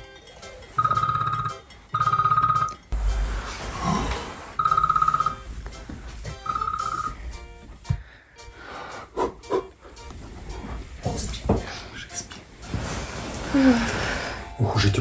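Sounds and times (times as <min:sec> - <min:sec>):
mobile phone buzzing ring: 0:00.8 - 0:02.9, 0:04.6 - 0:05.5, 0:06.4 - 0:07.2.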